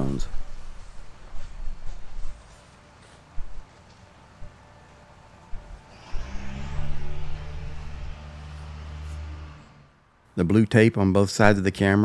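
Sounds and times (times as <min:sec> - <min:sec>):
vehicle engine running: 0:04.4 - 0:10.3.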